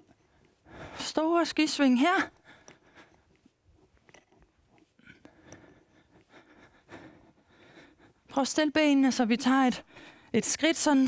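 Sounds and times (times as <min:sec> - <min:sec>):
faint breaths: 0:00.0 - 0:01.2, 0:02.2 - 0:08.4, 0:09.8 - 0:10.4.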